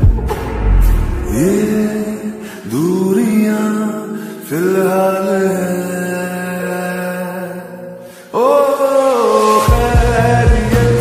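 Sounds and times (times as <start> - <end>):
slowed reverb-heavy song singing: 0.0 - 11.0.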